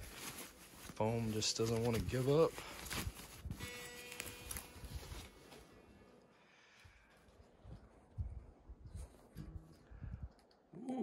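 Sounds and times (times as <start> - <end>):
foam sheet rustling and crinkling: 0.0 - 5.8.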